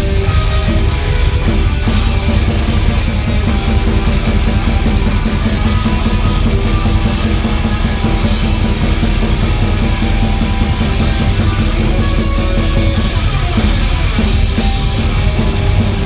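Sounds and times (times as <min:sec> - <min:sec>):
drum kit: 0:00.0 - 0:16.0
electric guitar: 0:00.0 - 0:16.0.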